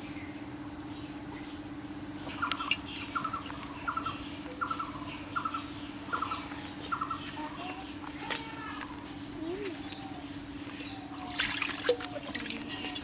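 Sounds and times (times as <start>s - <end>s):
steady low hum: 0.0s - 13.0s
bird trilling chirp: 2.2s - 13.0s.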